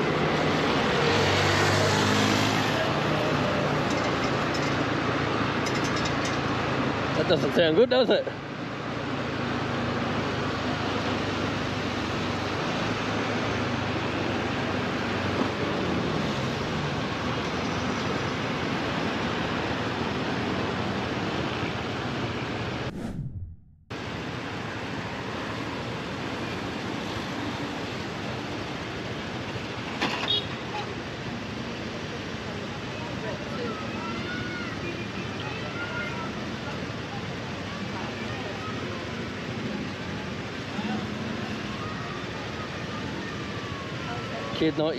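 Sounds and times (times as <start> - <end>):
road traffic: 0.0 - 44.9
wind on microphone: 22.9 - 23.7.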